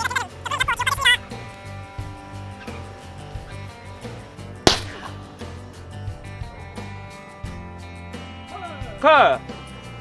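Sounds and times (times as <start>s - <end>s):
background music: 0.0s - 10.0s
shotgun shot: 4.6s - 5.4s.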